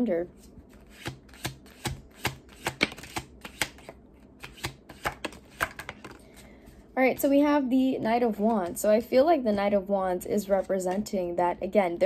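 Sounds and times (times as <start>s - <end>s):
cards being shuffled: 0.4s - 6.4s.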